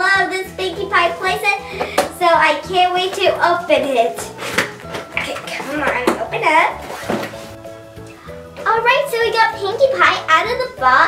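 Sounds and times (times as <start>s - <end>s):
background music: 0.0s - 11.0s
person speaking: 5.1s - 6.8s.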